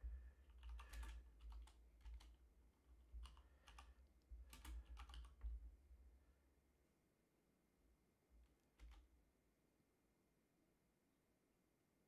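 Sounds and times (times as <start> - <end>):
typing on computer keyboard: 0.4 - 2.4, 3.2 - 5.6, 8.7 - 9.1.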